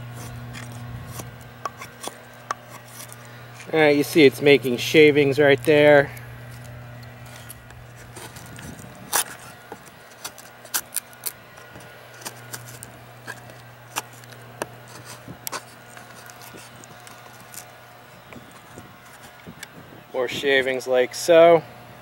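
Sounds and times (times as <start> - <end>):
knife scraping shavings off wood: 0.0 - 4.6, 5.5 - 17.8.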